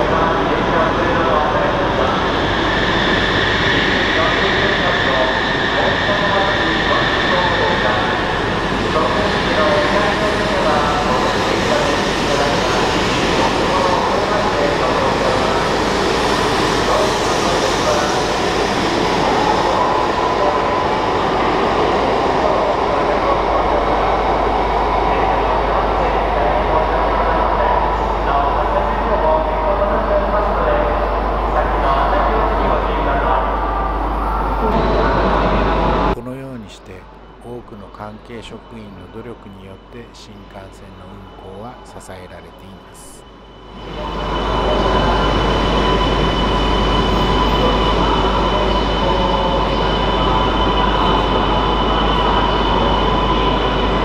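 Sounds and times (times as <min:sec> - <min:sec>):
train running past: 0:00.0 - 0:54.0.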